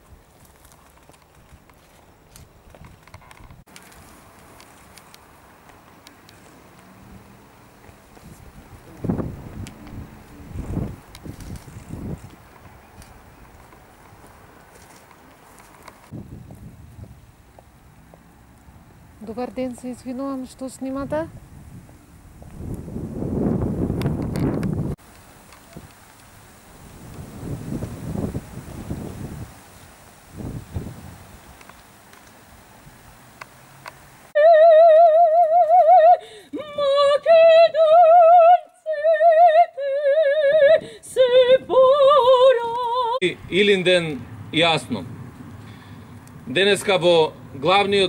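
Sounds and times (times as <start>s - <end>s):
faint outdoor background noise: 0.0s - 48.0s
light footsteps: 7.6s - 19.0s
wind buffeting microphone: 8.0s - 14.6s, 16.1s - 17.6s, 20.0s - 25.0s, 25.6s - 31.7s.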